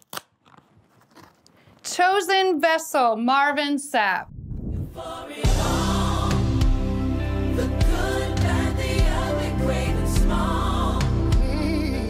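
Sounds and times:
envelope snapping open: 0.0s - 1.5s
paper and card crinkling: 0.0s - 1.8s.

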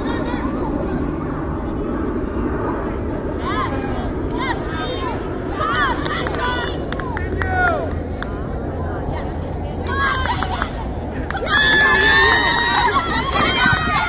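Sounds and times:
outdoor background rumble: 0.0s - 14.0s.

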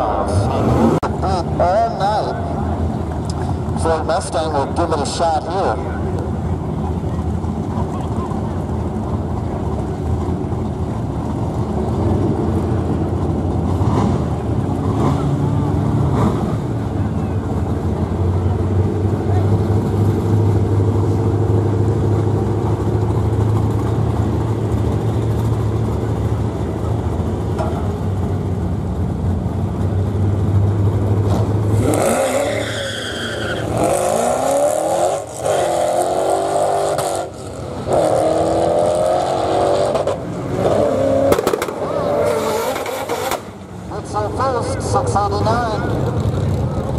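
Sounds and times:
engine revving and accelerating: 0.0s - 1.4s, 13.5s - 17.0s, 30.4s - 43.6s
engines idling: 0.0s - 36.0s, 36.6s - 46.9s.

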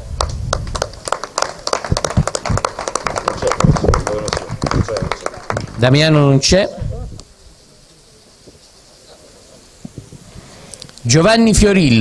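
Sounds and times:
group of people clapping: 0.2s - 6.1s.

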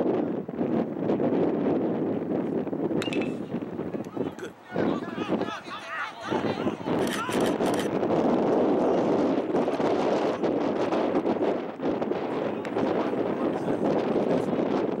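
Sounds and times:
crowd cheering and shouting: 4.2s - 7.4s.

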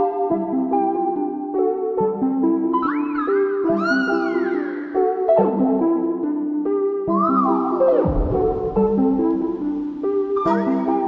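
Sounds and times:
plucked background music: 0.0s - 11.0s.

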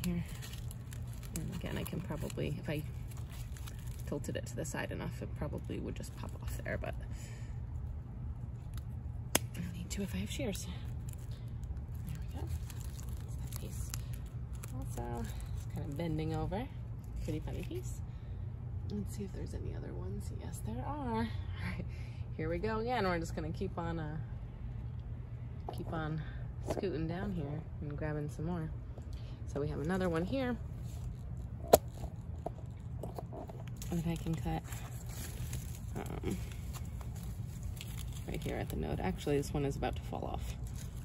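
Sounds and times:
steady low rumble: 0.0s - 41.0s.

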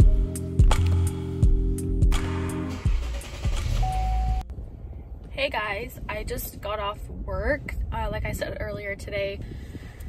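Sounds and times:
car engine rumbling: 0.0s - 7.0s
in-cabin road noise: 2.2s - 4.6s
short steady beep: 3.8s - 4.4s.

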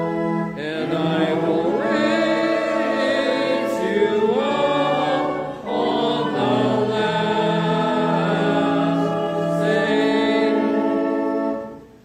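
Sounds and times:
congregation singing a hymn: 0.0s - 11.8s.

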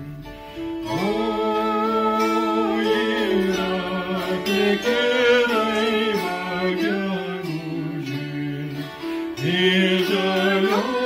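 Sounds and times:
man and woman singing: 0.0s - 11.0s
plucked zithers: 0.0s - 11.0s.

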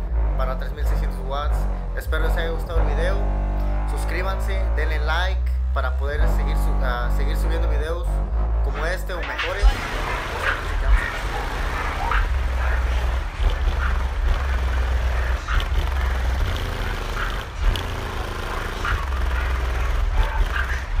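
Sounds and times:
subwoofer deep bass notes: 0.0s - 21.0s
crowd voices: 8.7s - 21.0s.

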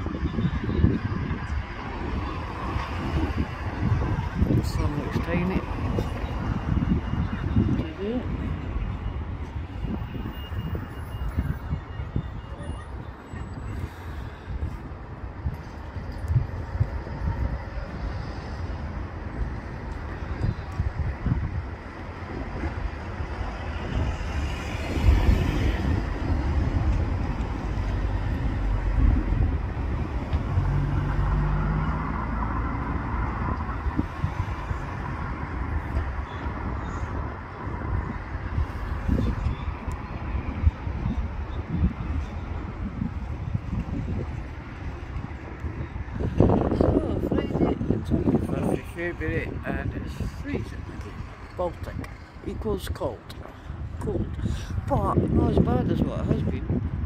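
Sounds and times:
road traffic rumble: 0.0s - 57.0s
wind buffeting microphone: 0.0s - 57.0s.

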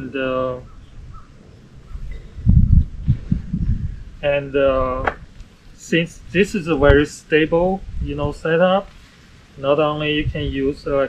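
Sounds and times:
microphone buffeting thumps: 1.8s - 5.4s.

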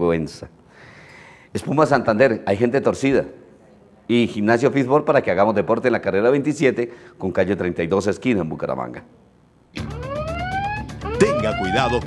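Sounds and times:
siren winding upward: 9.8s - 12.0s.

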